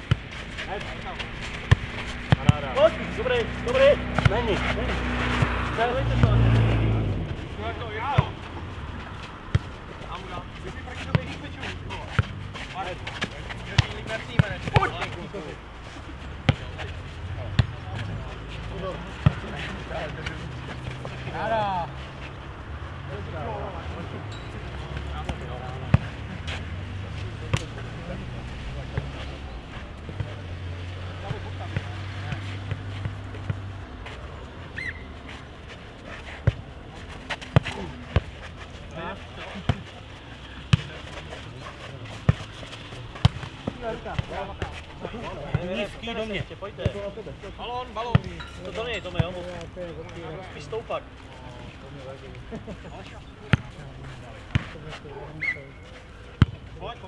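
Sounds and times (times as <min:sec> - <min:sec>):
ball kicked and bouncing thuds: 0:00.0 - 0:03.0, 0:04.1 - 0:06.6, 0:07.8 - 0:15.5, 0:16.4 - 0:19.6, 0:30.0 - 0:30.4, 0:31.2 - 0:33.7, 0:37.3 - 0:38.4, 0:39.6 - 0:39.9, 0:42.2 - 0:47.1, 0:48.0 - 0:50.2, 0:54.5 - 0:54.8, 0:56.4 - 0:56.7
faint players' voices: 0:00.0 - 0:57.0.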